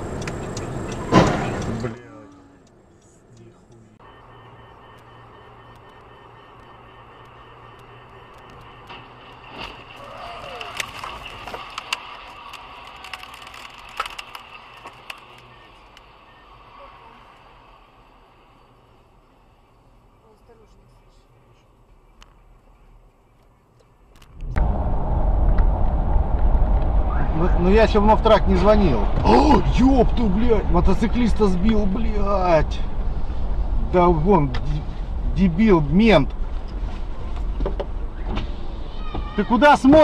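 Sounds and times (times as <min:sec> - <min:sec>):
car interior road noise: 0:00.0 - 0:40.0
loud low rumbling road noise: 0:00.0 - 0:40.0.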